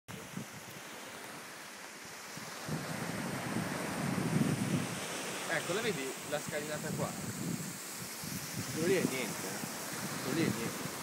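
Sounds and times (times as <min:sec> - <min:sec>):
wind buffeting microphone: 0:00.1 - 0:01.0, 0:02.0 - 0:11.0
waves washing onto shore: 0:00.1 - 0:11.0.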